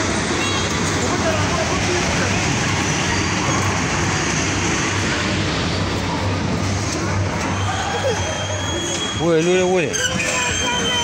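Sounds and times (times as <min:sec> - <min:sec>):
bumper-car ride din: 0:00.0 - 0:11.0.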